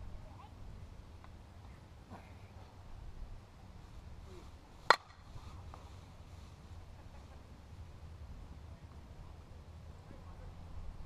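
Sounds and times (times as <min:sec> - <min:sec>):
bat hitting softball crack: 0:04.8 - 0:05.3.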